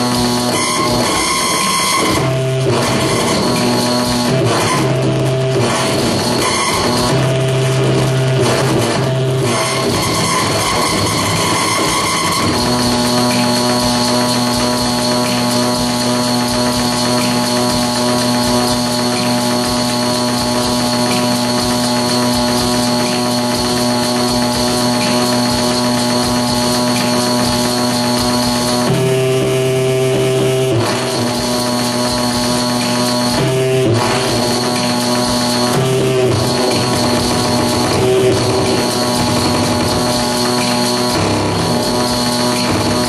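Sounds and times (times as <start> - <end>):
harsh electronic drone: 0.0 - 43.0.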